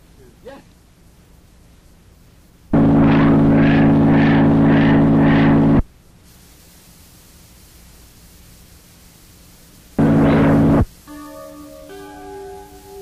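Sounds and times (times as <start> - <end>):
faint hiss: 0.0 - 2.8, 5.8 - 13.0
loud droning chord: 2.7 - 5.8, 10.0 - 13.0.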